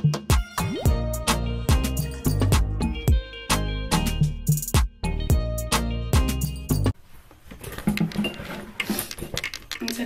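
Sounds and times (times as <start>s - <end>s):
objects clicking and tapping: 7.6s - 10.0s.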